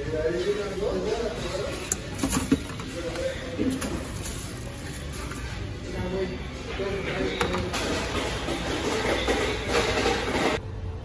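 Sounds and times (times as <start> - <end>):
restaurant noise: 0.0 - 10.9.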